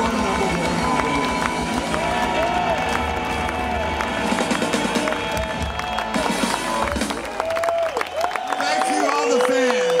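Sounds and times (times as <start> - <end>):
live rock band playing loudly: 0.0 - 7.5.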